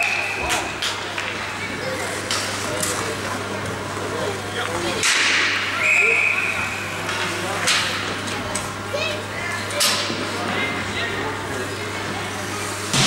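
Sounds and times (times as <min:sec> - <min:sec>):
scattered voices: 0:00.0 - 0:13.0.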